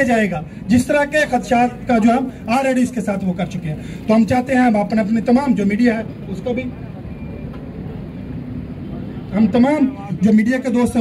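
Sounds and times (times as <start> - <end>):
faint indistinct murmur: 0.6 - 11.0.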